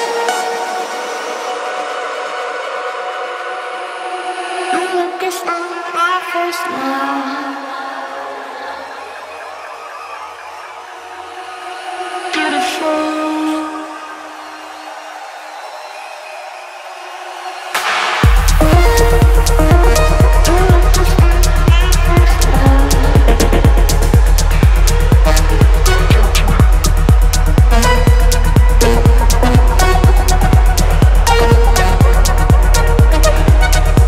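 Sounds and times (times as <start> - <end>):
house music beat: 8.3 - 34.0
held synth chords: 17.8 - 34.0.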